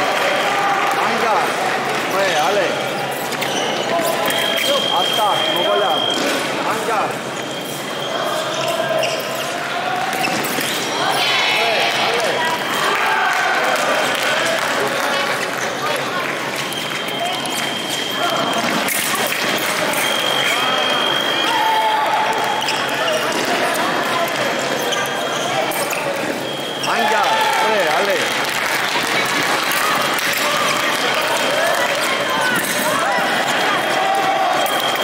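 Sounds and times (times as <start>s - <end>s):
voices in a hall: 0.0s - 35.0s
shoes squeaking on floor: 1.9s - 11.5s, 15.1s - 28.1s
high squeal: 2.4s - 6.4s, 7.2s - 9.6s, 16.6s - 23.3s.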